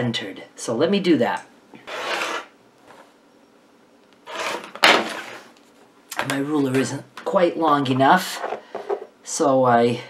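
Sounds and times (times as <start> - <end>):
rotary cutter scraping through fabric: 1.8 - 2.5, 4.3 - 5.4.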